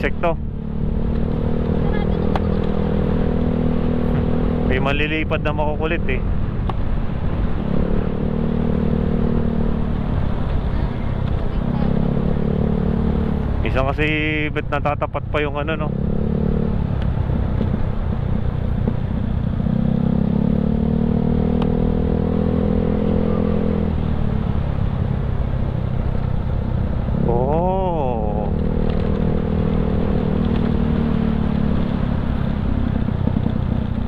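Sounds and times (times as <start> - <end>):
wind and road noise: 0.0 - 34.0.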